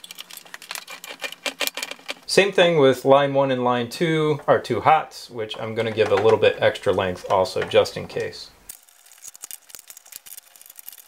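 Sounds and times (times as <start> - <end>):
screwdriver clicking and scraping metal: 0.0 - 2.2.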